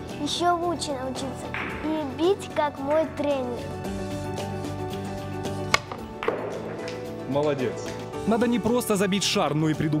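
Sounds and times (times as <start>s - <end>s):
background music: 0.0s - 10.0s
billiard cue striking ball: 5.7s - 7.1s.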